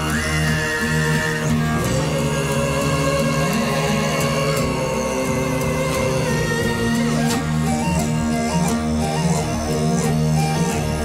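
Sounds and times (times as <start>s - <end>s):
bowed fiddles: 0.0s - 11.0s
low drone: 0.0s - 11.0s
plucked lute: 0.0s - 11.0s.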